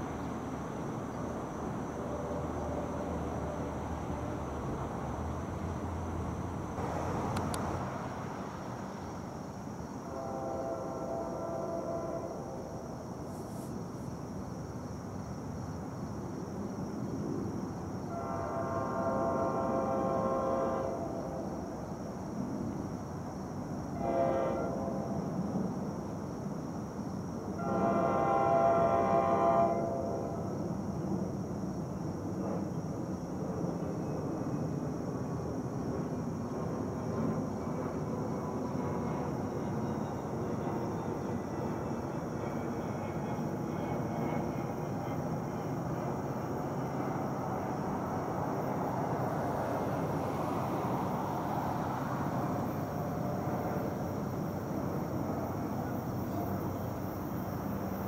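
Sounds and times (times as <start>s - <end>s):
train rumble: 0.0s - 58.0s
distant locomotive horn: 10.0s - 12.6s, 18.1s - 21.4s, 24.0s - 25.3s, 27.6s - 30.4s.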